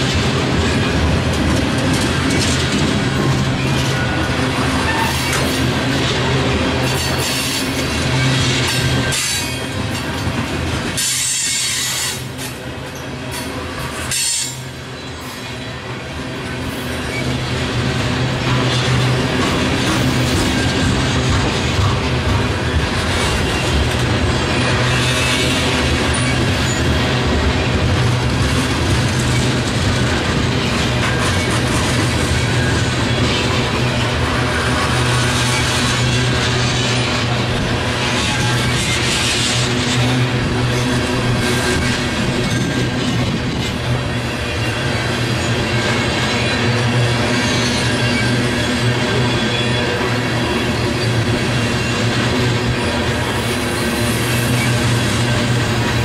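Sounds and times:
wheels clicking over rail joints: 0:00.0 - 0:14.7
freight train rolling past: 0:00.0 - 0:56.0
train wheel squeal: 0:00.0 - 0:56.0.

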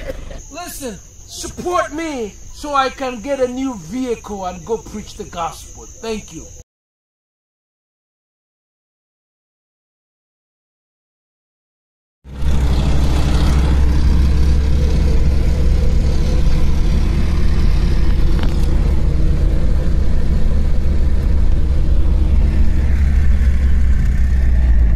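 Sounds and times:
car engine and road rumble: 0:00.0 - 0:06.6, 0:12.3 - 0:24.9.

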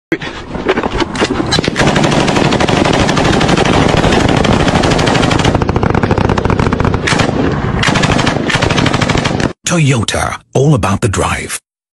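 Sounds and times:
automatic machine gun fire: 0:01.7 - 0:09.6.

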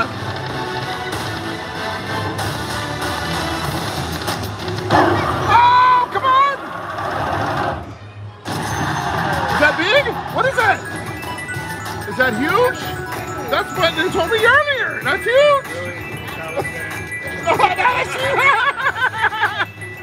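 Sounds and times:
casino background noise: 0:08.5 - 0:20.0
electronic slot machine music: 0:08.5 - 0:20.0.

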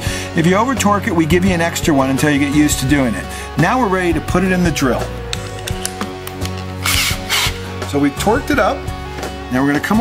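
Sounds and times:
background music: 0:00.0 - 0:10.0
drill chuck clicks: 0:05.3 - 0:07.6
drill chuck rasp: 0:06.8 - 0:07.7.

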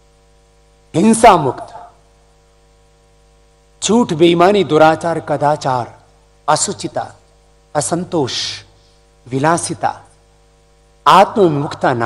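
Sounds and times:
electrical mains hum: 0:00.0 - 0:12.0
man speaking: 0:01.0 - 0:02.0, 0:03.8 - 0:10.1, 0:11.0 - 0:12.0.

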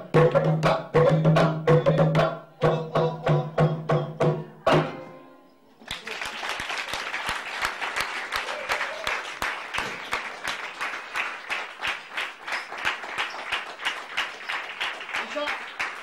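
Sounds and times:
audience applauding: 0:05.8 - 0:16.0.

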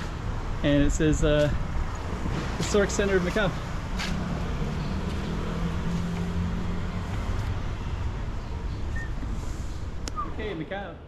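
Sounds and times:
vehicle engine humming: 0:00.0 - 0:10.6
low street rumble: 0:00.0 - 0:11.0.

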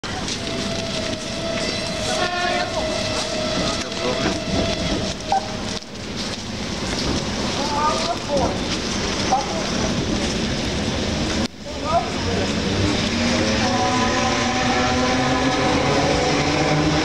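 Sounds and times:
electric train steady tone: 0:00.0 - 0:17.0
voices: 0:00.1 - 0:06.0, 0:07.5 - 0:10.3
footsteps in snow: 0:00.1 - 0:10.4.

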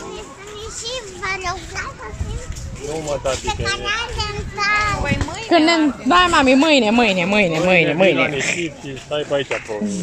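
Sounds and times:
children talking and calling out: 0:00.0 - 0:07.6.

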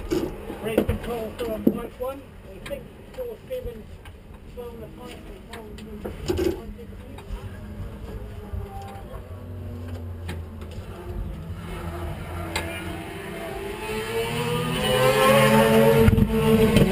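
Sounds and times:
race car engine: 0:05.1 - 0:16.9.

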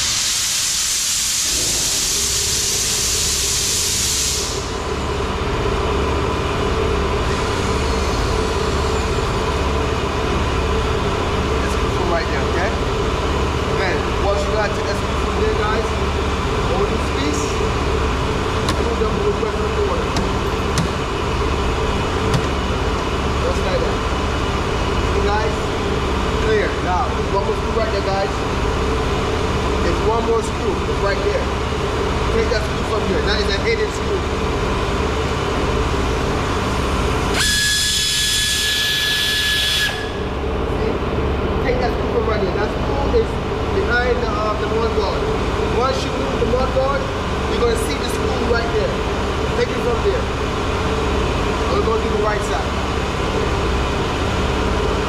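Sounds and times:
loud hiss: 0:00.0 - 0:04.8, 0:37.3 - 0:40.2
machine hum with pulsing throb: 0:01.4 - 0:55.0.

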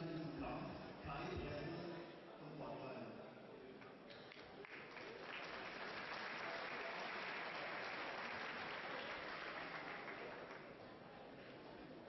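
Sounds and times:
audience applauding: 0:04.1 - 0:10.8.

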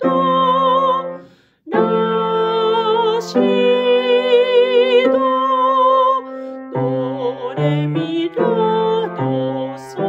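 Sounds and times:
piano accompaniment: 0:00.0 - 0:10.0
woman singing with vibrato: 0:00.0 - 0:10.0
quick breath: 0:01.2 - 0:01.7, 0:06.3 - 0:06.7.

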